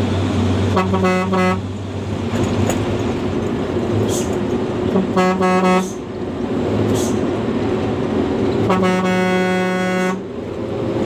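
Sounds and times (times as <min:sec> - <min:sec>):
diesel truck engine running: 0:00.0 - 0:11.0
road and cab noise: 0:00.0 - 0:11.0.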